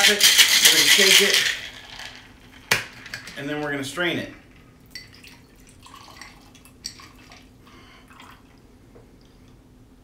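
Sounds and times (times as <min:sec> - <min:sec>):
metal shaker clinking: 0:00.0 - 0:02.2
liquid trickling into glass: 0:04.8 - 0:07.5.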